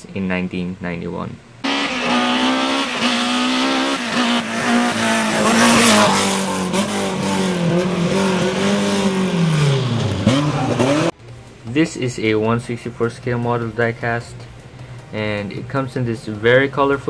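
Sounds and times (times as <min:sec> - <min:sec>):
race car engine at high revs: 0:01.6 - 0:11.2.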